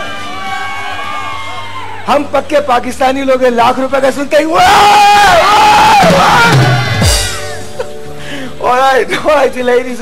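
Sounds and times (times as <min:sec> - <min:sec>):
audience cheering and shouting: 0:00.0 - 0:02.4, 0:04.5 - 0:07.7
man yelling: 0:04.5 - 0:07.0.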